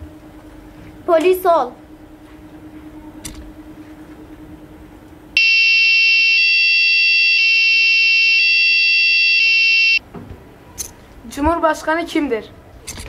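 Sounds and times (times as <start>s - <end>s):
two-tone police siren: 5.4s - 10.0s.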